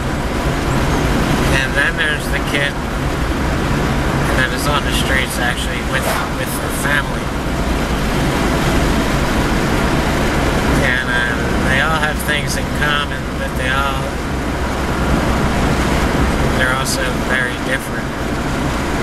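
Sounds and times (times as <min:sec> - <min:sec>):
road and engine noise in car cabin: 0:00.0 - 0:05.8, 0:08.1 - 0:19.0
man talking: 0:04.5 - 0:07.3.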